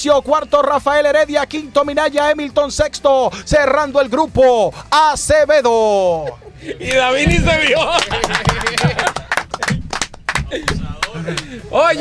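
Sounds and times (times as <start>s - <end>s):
people clapping: 6.8s - 11.6s.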